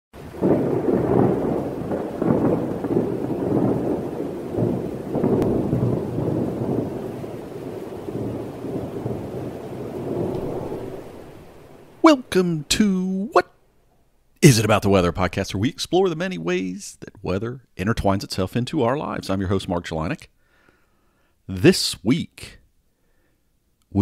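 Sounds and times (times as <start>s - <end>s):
rolling thunder: 0.2s - 12.8s
rain: 0.2s - 23.2s.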